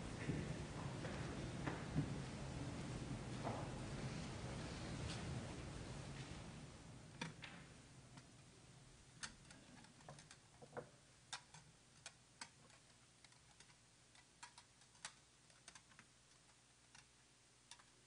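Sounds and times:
faint clicks and taps: 9.2 - 18.0.

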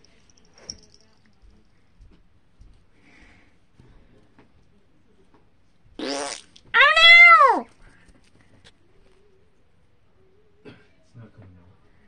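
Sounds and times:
meow-like call: 6.8 - 7.7.

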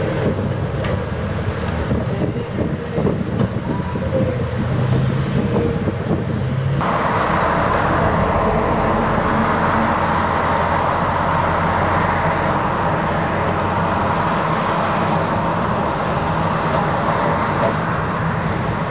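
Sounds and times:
diesel engine running: 0.0 - 18.9.

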